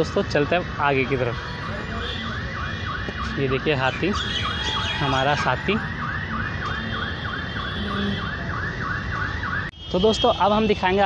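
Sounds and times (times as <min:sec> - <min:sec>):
electronic siren yelping: 0:00.0 - 0:09.8.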